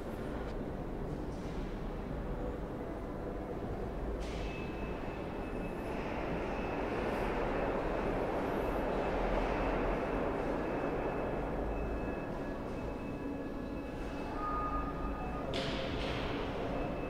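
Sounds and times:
rushing ambient hall noise: 0.0s - 17.0s.

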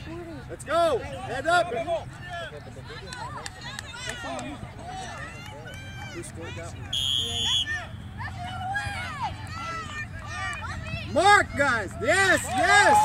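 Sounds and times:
players and spectators shouting: 0.3s - 13.0s
shrill referee's whistle blast: 6.9s - 8.0s.

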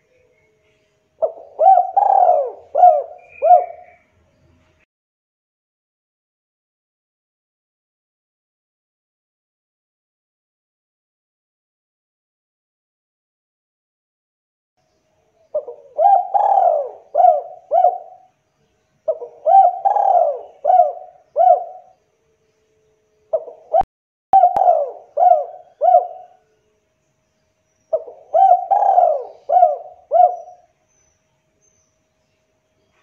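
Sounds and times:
dove cooing: 1.2s - 4.0s, 15.5s - 18.3s, 19.0s - 22.0s, 23.3s - 26.4s, 27.9s - 30.7s.

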